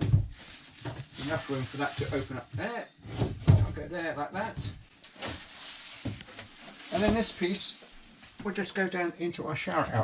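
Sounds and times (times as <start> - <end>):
plastic cover rustling: 0.0 - 2.6, 4.4 - 8.7.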